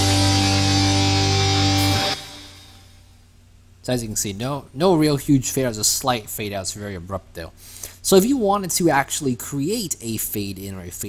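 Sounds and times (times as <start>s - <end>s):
guitar chord: 0.0s - 3.0s.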